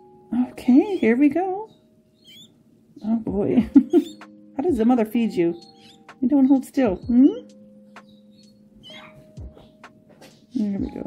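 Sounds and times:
parakeet chick squeaking: 0.6s - 4.4s, 5.3s - 10.6s.

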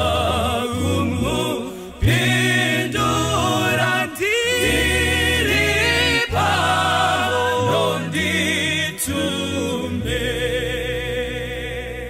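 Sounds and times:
group singing a hymn in harmony: 0.0s - 12.0s.

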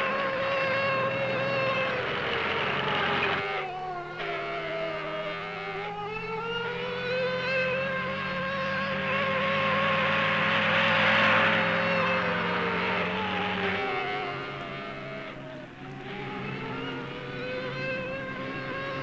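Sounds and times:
steady low hum: 0.0s - 19.0s
vehicle engine passing by: 0.0s - 19.0s.

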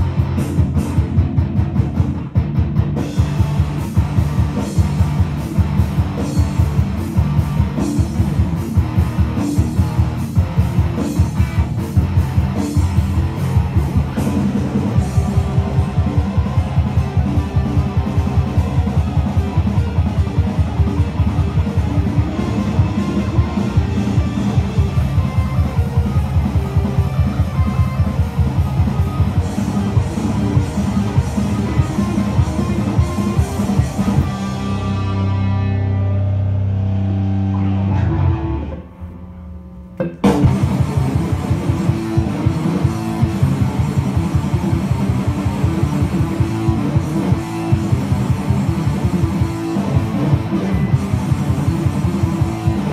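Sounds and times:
backing track: 0.0s - 52.9s
electric guitar fast notes: 0.0s - 52.9s.

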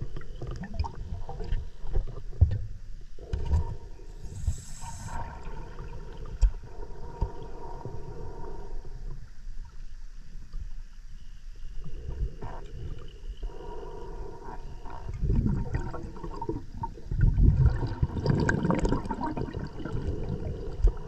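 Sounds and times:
faint steady hum: 0.0s - 21.0s
short hiss: 4.2s - 5.2s.

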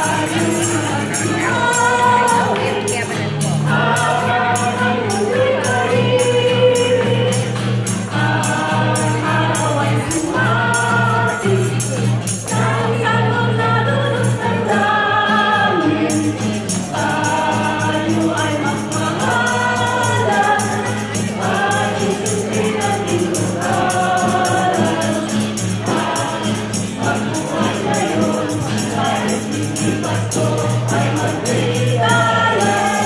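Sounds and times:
acoustic guitar strumming: 0.0s - 33.0s
choir singing: 0.0s - 33.0s
jingling hand percussion: 0.0s - 33.0s.

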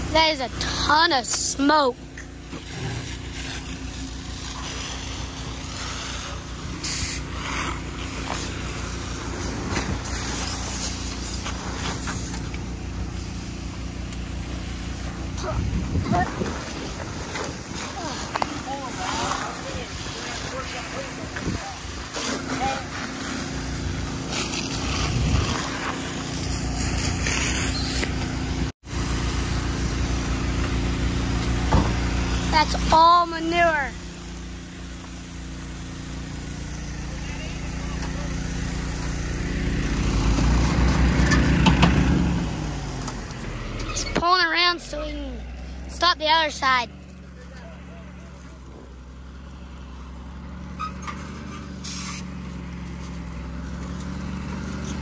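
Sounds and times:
fire hose spraying water: 0.0s - 55.0s
truck engine running: 0.0s - 55.0s.

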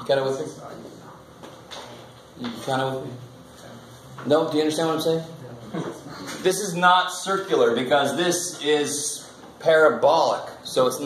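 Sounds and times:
man asking a question: 4.2s - 11.0s.

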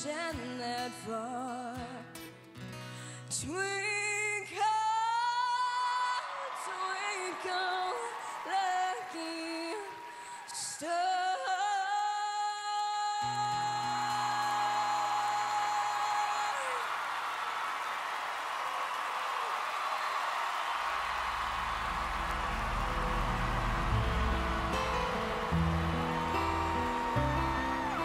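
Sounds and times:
studio audience applauding: 5.6s - 11.3s, 13.3s - 28.0s
backing music with bass line: 21.6s - 28.0s.

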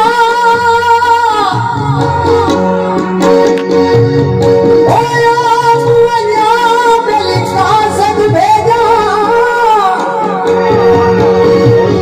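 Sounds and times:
harmonium drone: 0.0s - 12.0s.

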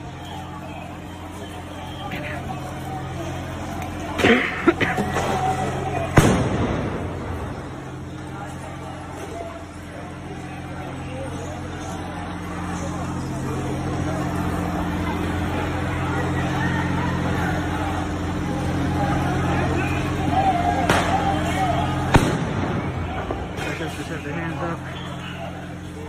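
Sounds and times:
crowd shouting: 0.0s - 26.0s
sharp bangs: 6.1s - 7.7s, 20.8s - 24.2s.

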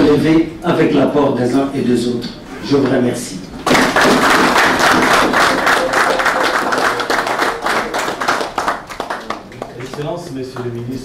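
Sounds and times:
people applauding: 3.6s - 11.0s.

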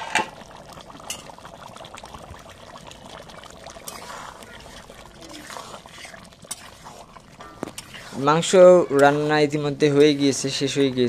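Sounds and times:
curry bubbling and popping: 0.0s - 11.0s.

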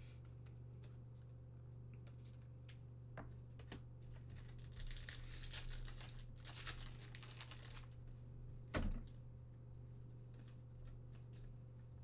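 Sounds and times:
wrapper tearing and crinkling: 4.2s - 8.0s.

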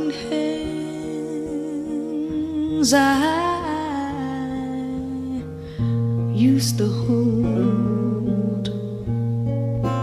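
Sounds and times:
woman singing a long note: 0.0s - 5.4s
soft acoustic guitar: 0.0s - 10.0s.

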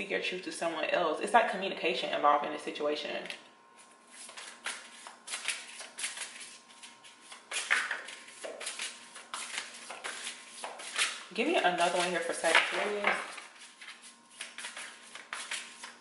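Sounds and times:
cards being shuffled: 3.8s - 16.0s.

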